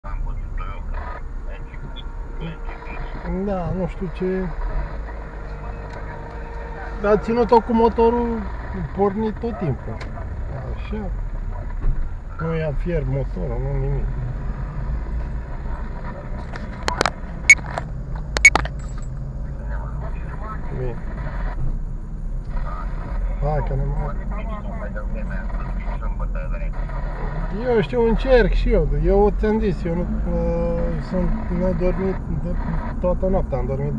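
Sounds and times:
car engine rumbling: 0.0s - 33.9s.

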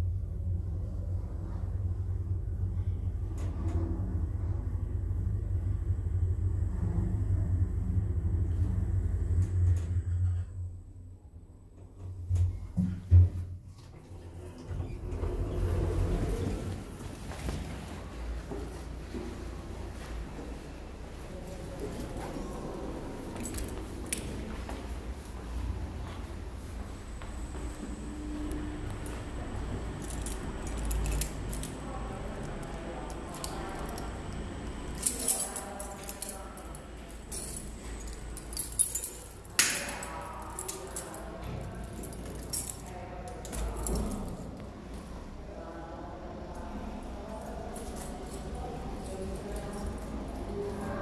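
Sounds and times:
lift car humming: 0.0s - 12.3s, 14.2s - 45.2s
low rumble: 0.0s - 12.8s, 14.0s - 51.0s
keys jangling: 23.3s - 24.4s, 29.8s - 44.6s, 47.5s - 50.9s.

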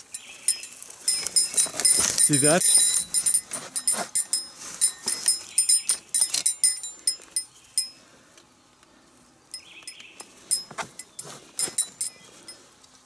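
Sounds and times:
small bells jingling: 0.0s - 8.0s, 9.5s - 12.7s.

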